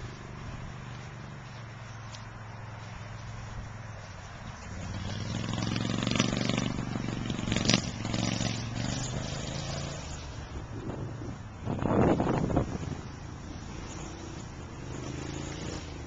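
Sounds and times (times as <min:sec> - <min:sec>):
noisy rush: 0:00.0 - 0:16.0
small vehicle engine running: 0:00.0 - 0:16.0.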